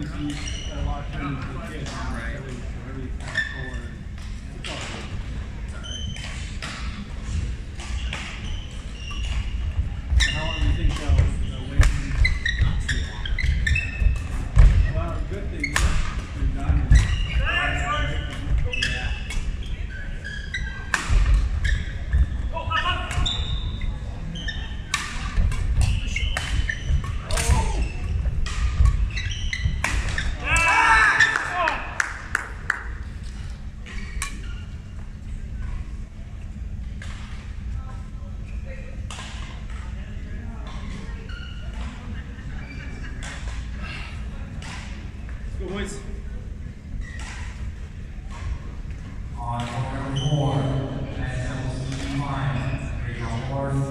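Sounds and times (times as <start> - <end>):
rackets hitting shuttlecock: 24.8 - 31.4
players calling out: 29.2 - 32.4.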